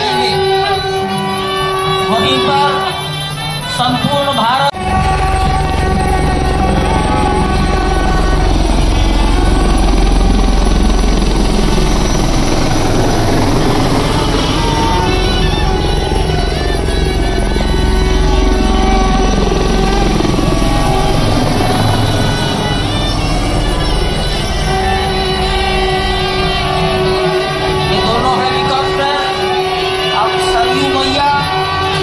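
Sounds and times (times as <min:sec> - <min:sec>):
helicopter rotor beating: 0:00.0 - 0:32.0
music: 0:00.0 - 0:32.0.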